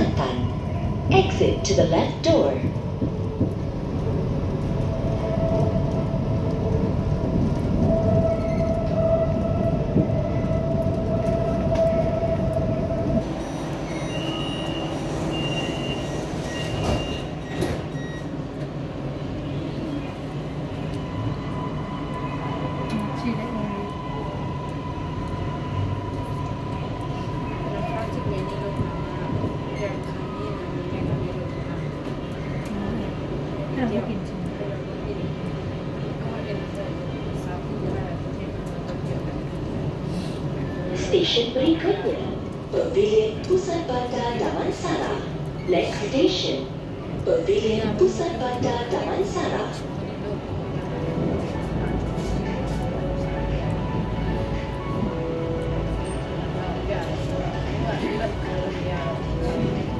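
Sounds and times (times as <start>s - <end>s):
metro train rumbling: 0.0s - 59.9s
door signal beeps: 13.9s - 18.3s.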